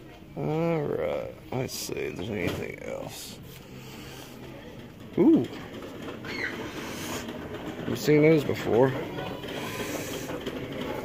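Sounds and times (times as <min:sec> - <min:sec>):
steady shop hum: 0:00.0 - 0:11.0.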